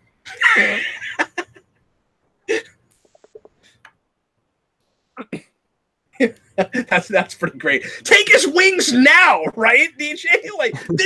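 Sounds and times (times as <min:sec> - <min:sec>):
man's short burst of laughter: 0:00.3 - 0:01.1.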